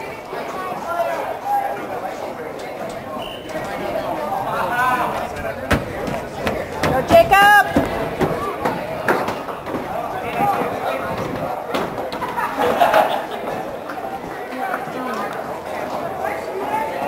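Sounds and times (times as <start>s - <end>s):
sharp knocks: 5.1s - 10.7s.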